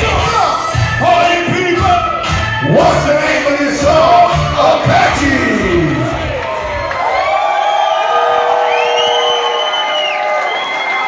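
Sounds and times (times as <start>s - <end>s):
music beat: 0.0s - 6.8s
crowd cheering and whooping: 6.0s - 11.0s
high whoops and screams: 6.3s - 11.0s.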